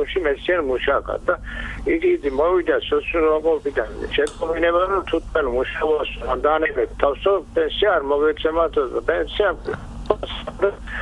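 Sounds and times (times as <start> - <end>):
person speaking into a microphone: 0.0 - 11.0.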